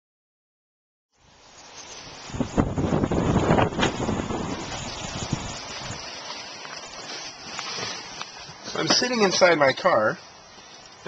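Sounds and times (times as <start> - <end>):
wind buffeting microphone: 2.1 - 6.2.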